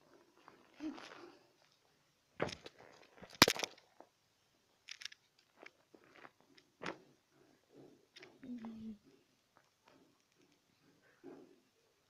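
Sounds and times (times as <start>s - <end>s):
plastic beach ball crinkling: 2.4s - 4.1s.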